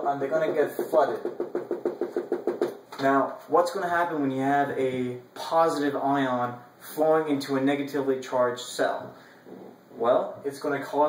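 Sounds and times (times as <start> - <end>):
marker tapping on whiteboard: 0.2 - 3.1.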